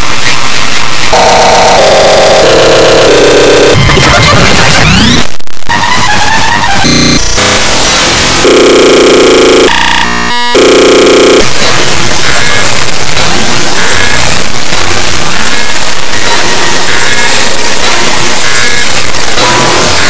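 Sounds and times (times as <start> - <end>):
distorted cartoon soundtrack: 0.0 - 20.0
stuttering glitch: 0.0 - 20.0.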